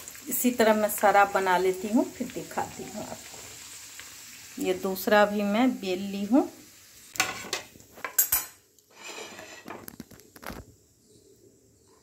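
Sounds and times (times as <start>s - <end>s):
metal spatula clinking on plate: 7.2s - 9.7s.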